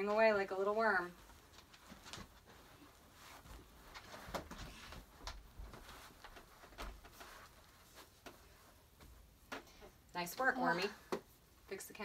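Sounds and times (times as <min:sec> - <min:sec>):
rustling on carpet: 0:00.1 - 0:10.0.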